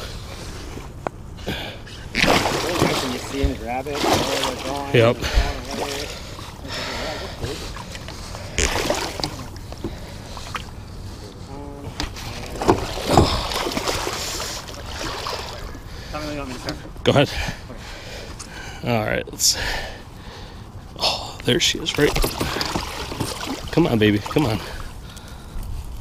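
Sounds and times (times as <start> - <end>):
water splashing and sloshing: 0.0 - 18.8, 19.6 - 26.0.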